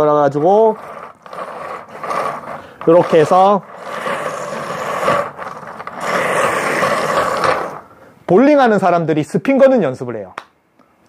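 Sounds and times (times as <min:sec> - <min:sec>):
bowling ball rolling and scraping: 0:00.0 - 0:08.1.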